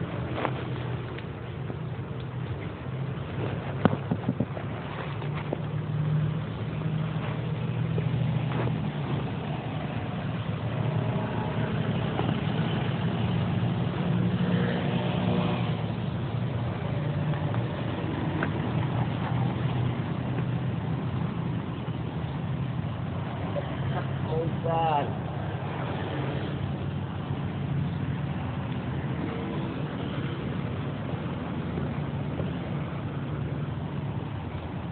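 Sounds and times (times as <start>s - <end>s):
low engine hum: 0.0s - 34.9s.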